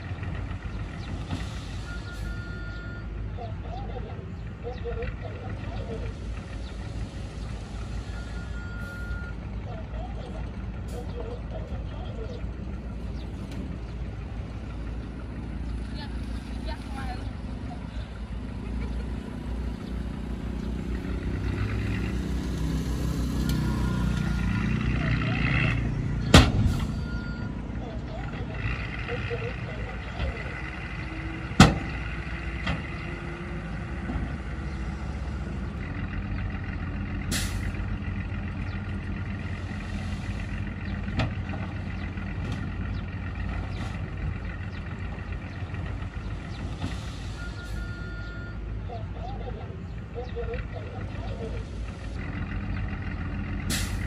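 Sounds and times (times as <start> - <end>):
truck engine running under load: 0.0 - 54.0.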